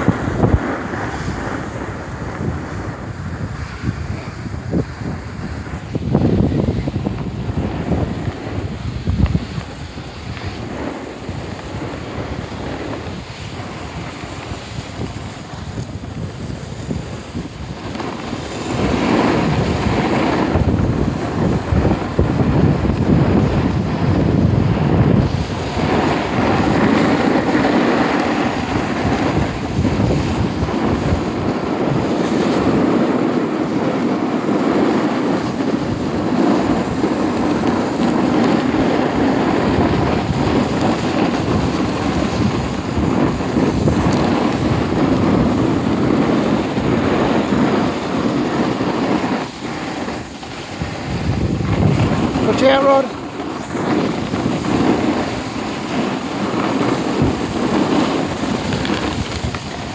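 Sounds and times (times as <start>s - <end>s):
skis sliding over packed snow: 0.0s - 59.9s
wind buffeting microphone: 0.0s - 59.9s.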